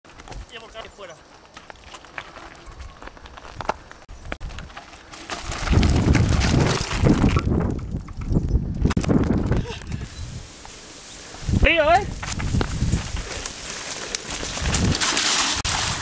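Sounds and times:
tyres crunching over loose stones: 0:00.0 - 0:09.9, 0:12.1 - 0:16.0
bike rattling: 0:01.4 - 0:10.1, 0:11.8 - 0:16.0.

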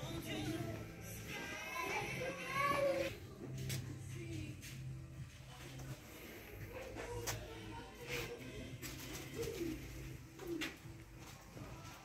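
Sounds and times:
pigeon cooing: 0:08.9 - 0:10.9.

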